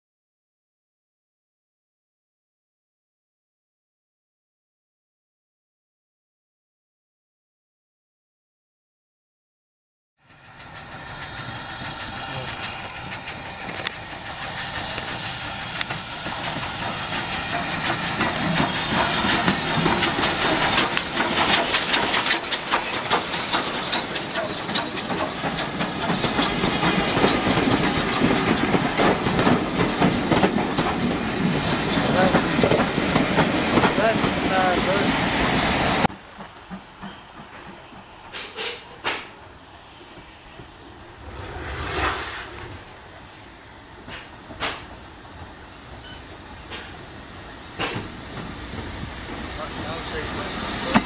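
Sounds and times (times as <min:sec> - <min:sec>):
steam train passing: 0:10.2 - 0:51.0
sharp clicks from train wheels: 0:10.5 - 0:40.8, 0:44.0 - 0:51.0.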